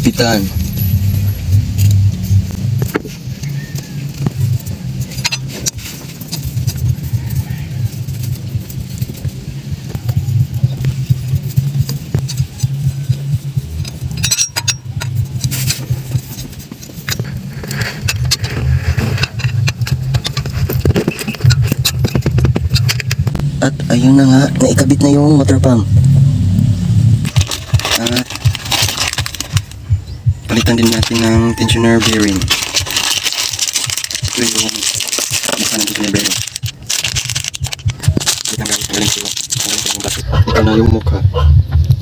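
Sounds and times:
low drone: 0.0 - 42.0
ratchet clicking: 10.3 - 18.4.

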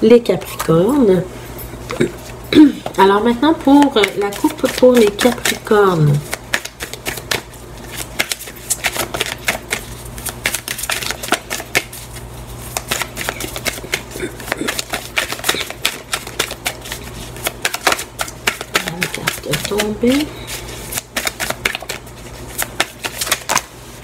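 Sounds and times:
low steady hum: 0.0 - 24.0
cards being shuffled: 3.6 - 24.0.

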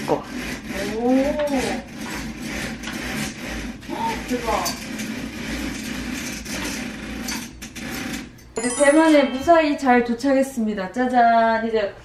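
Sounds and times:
small electric shade motor running: 0.0 - 8.3.

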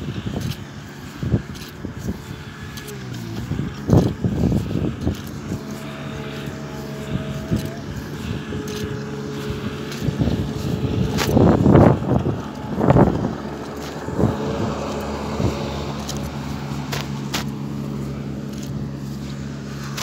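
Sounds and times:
engine hum: 0.0 - 20.0
rumbling bursts: 0.0 - 20.0.

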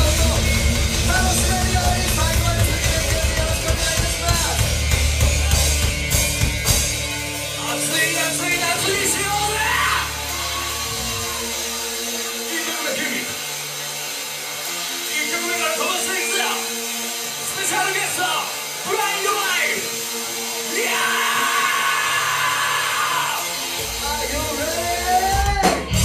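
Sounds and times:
bass guitar: 0.0 - 14.9, 20.8 - 26.0
full band with drums: 0.0 - 26.0
vocalist shouting: 8.6 - 11.6, 20.7 - 23.5.

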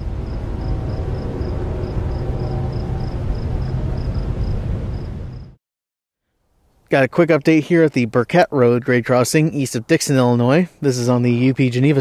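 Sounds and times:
loud steady rumbling: 0.0 - 5.6.

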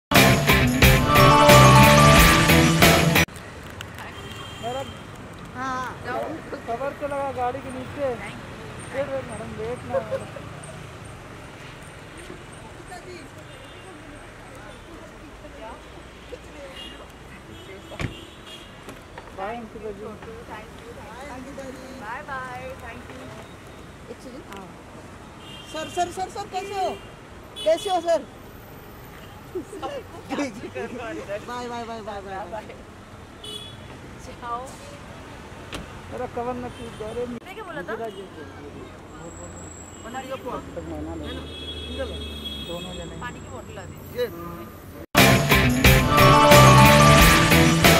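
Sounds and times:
people calling out: 0.1 - 3.2, 45.5 - 47.9
street traffic hum: 0.1 - 47.9.

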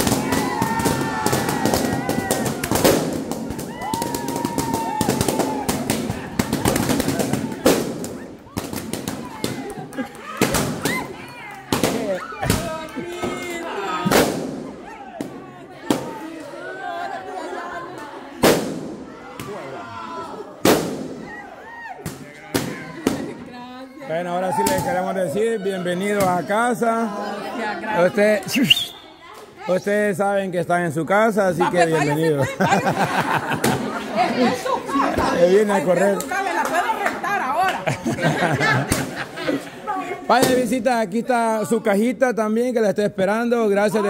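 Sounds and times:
people shouting and cheering: 0.0 - 30.2, 31.6 - 40.7
balloons popping: 20.6 - 21.3.

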